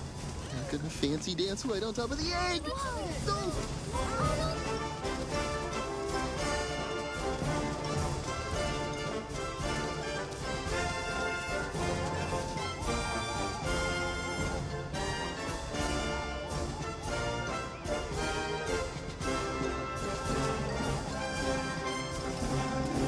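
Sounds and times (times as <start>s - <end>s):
marching band brass and woodwinds: 0.0s - 23.0s
steady drum beat: 0.0s - 23.0s.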